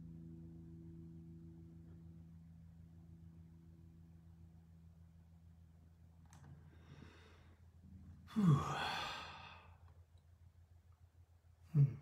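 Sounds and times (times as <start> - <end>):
man sighing: 8.2 - 9.8, 11.6 - 12.0.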